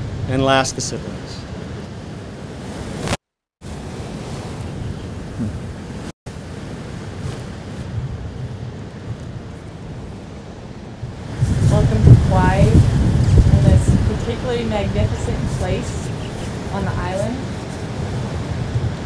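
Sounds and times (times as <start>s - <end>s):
ocean surf: 0.0s - 19.0s
wind rumble on microphone: 0.0s - 19.0s.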